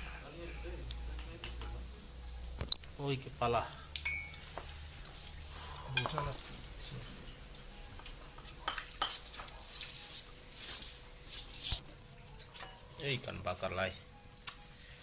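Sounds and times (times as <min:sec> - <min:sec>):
plates and glasses clinking: 0:04.0 - 0:04.6, 0:05.9 - 0:06.5, 0:07.6 - 0:09.5.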